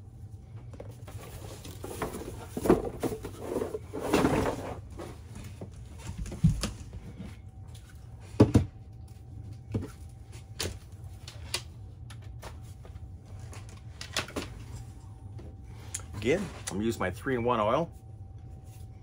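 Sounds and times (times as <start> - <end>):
low steady hum: 0.0 - 19.0.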